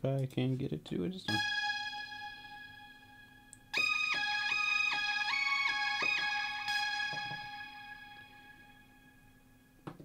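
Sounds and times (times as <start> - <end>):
electronic keyboard chord: 1.3 - 9.6.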